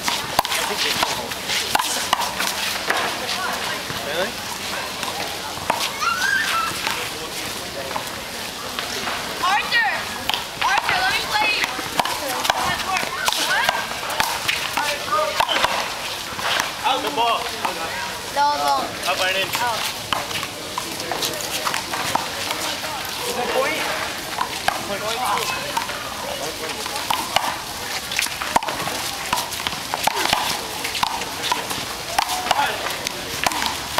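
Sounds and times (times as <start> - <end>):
outdoor background noise: 0.0 - 33.9
players calling: 0.0 - 33.9.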